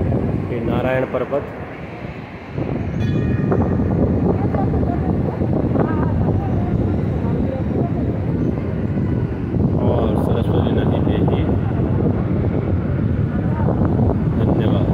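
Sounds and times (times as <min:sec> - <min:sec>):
river torrent roaring over boulders: 0:00.0 - 0:14.9.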